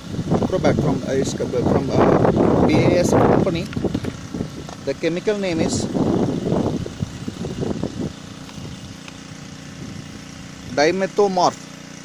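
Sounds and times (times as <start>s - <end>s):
engine hum: 0.0s - 12.0s.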